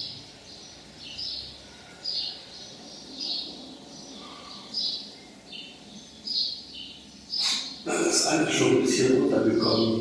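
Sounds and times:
small bird chirping: 0.0s - 7.9s.

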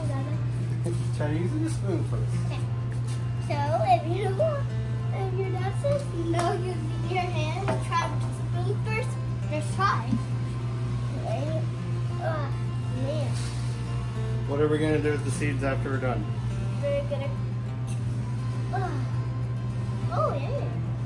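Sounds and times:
child talking: 0.0s - 0.6s, 2.4s - 2.8s, 3.4s - 10.4s, 11.1s - 13.6s, 16.8s - 17.5s, 18.7s - 19.2s, 20.0s - 20.9s
background music: 0.0s - 21.0s
steady low hum: 0.0s - 21.0s.

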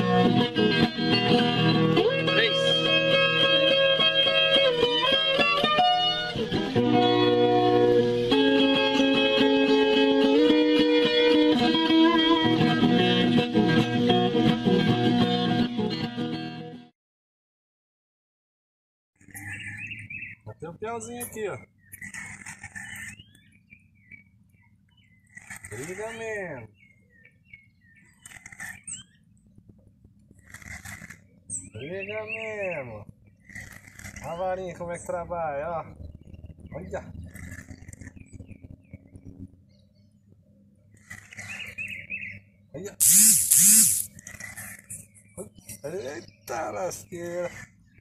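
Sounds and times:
birds chattering and whistling: 19.2s - 48.0s
faint high-pitched outdoor sounds: 42.7s - 44.2s.

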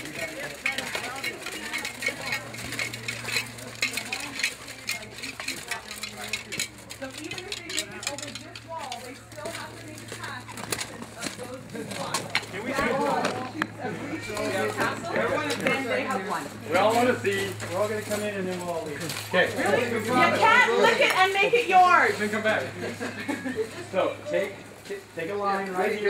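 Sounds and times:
low voices talking: 0.0s - 26.0s.

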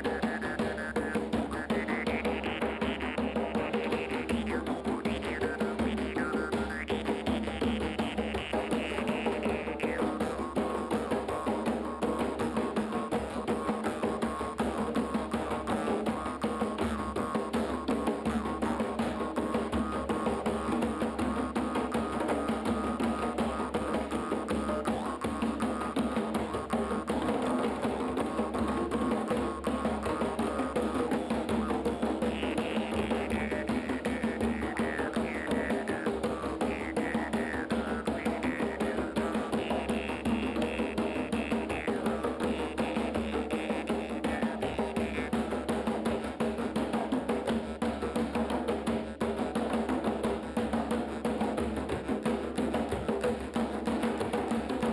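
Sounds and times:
djembes played by hand: 0.0s - 54.9s.

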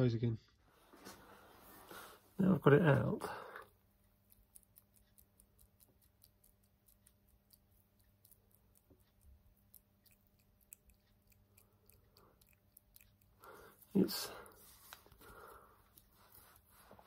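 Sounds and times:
low electrical hum: 0.0s - 17.0s.

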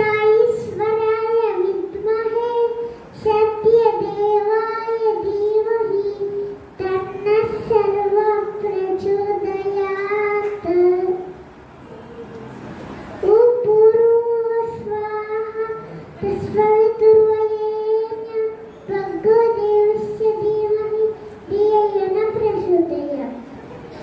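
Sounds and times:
boy singing into microphone: 0.0s - 11.4s, 13.2s - 23.4s.

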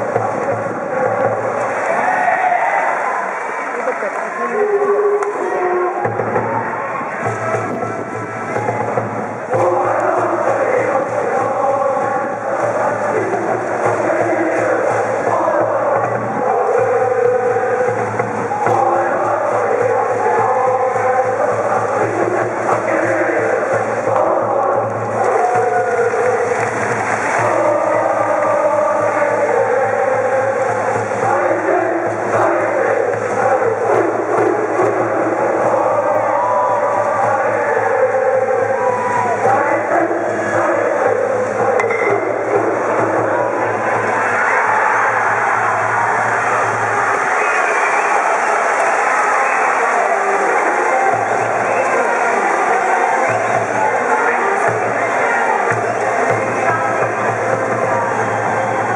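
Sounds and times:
crowd noise: 0.0s - 58.9s
students singing and chanting: 0.0s - 58.9s.

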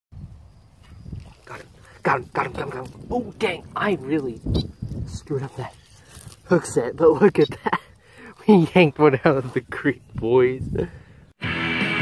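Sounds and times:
wind noise on microphone: 0.1s - 7.8s, 9.4s - 11.3s.

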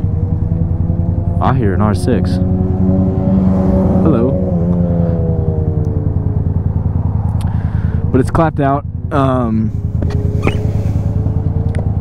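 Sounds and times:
motorcycle engine running low: 0.0s - 12.0s
passing motorcycle engine: 0.0s - 12.0s.

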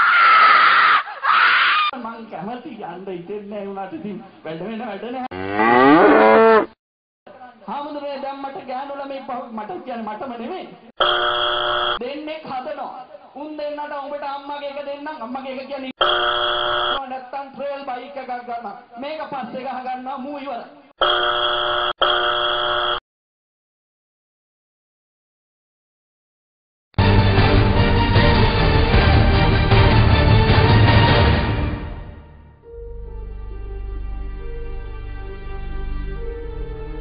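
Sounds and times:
cow mooing: 5.3s - 6.8s
buzzer tones: 11.0s - 12.0s, 16.0s - 17.0s, 21.0s - 23.0s.

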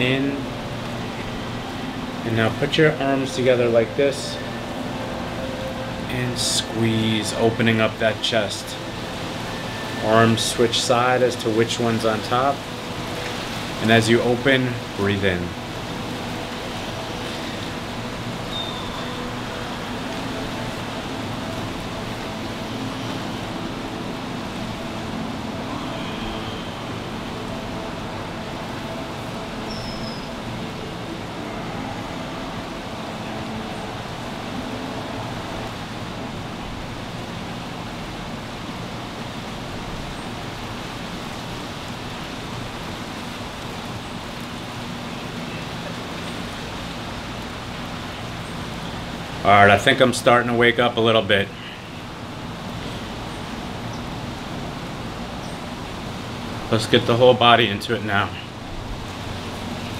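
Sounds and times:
background hiss and rumble: 0.0s - 59.9s
faint steady tones: 0.0s - 59.9s.

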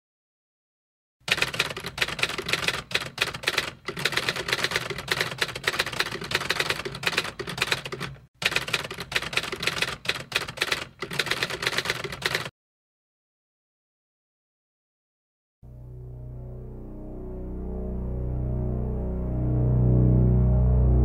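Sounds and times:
typewriter keys clattering: 1.3s - 12.5s.

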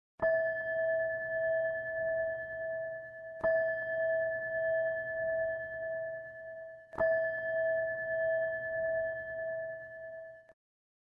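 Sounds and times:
singing bowl ringing: 0.2s - 10.6s.

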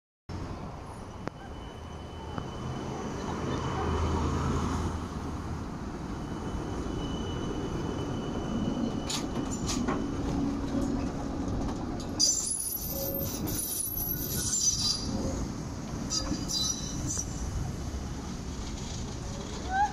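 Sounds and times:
tram motor hum: 0.4s - 19.9s
high wheel squeal: 6.1s - 10.4s, 12.2s - 15.4s, 16.0s - 17.8s
steel wheels rolling on rails: 6.3s - 19.9s.

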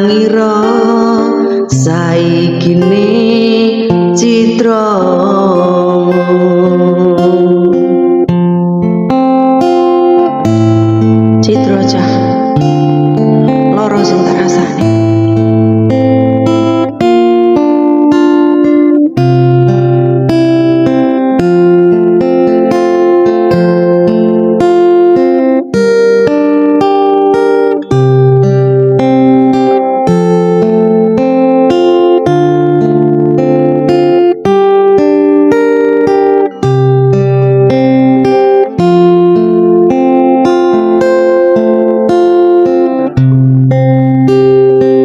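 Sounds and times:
acoustic guitar playing: 0.0s - 45.0s.

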